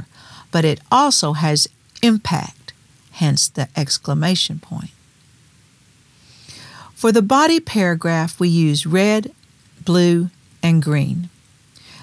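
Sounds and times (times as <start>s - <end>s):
soft intake of breath: 0.0s - 0.5s, 6.1s - 7.0s, 11.7s - 12.0s
low room hiss: 0.0s - 12.0s.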